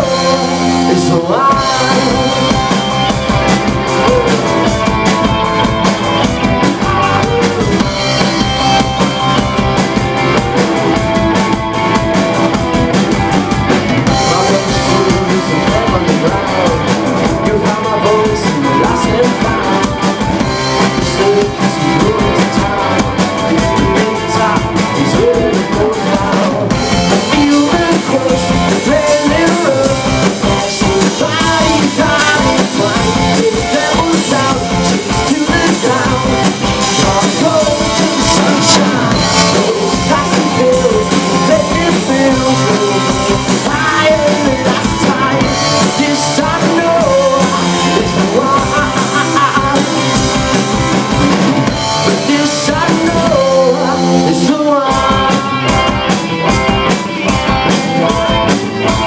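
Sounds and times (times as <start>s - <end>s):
live rock band playing: 0.0s - 59.0s.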